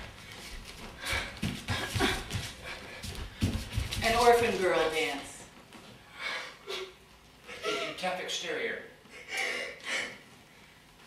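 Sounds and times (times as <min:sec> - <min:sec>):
footsteps on wooden floor: 0:00.0 - 0:04.8.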